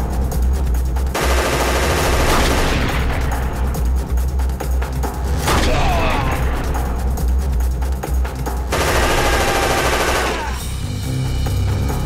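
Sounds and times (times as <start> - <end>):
low background music drone: 0.0 - 12.0
rapid gunfire: 1.1 - 3.8, 8.6 - 10.7.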